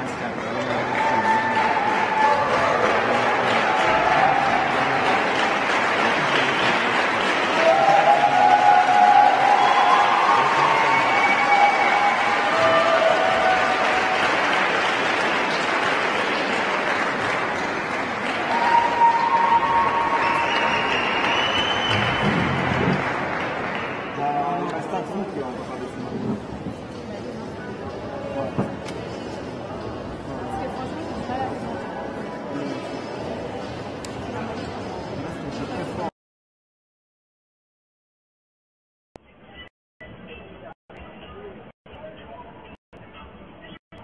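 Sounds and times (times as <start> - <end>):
audience applauding: 0.3 - 24.8.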